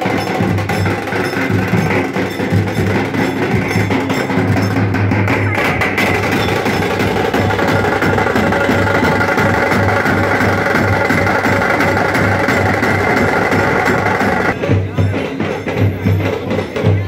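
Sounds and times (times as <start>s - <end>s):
drum band playing fast beat: 0.0s - 17.0s.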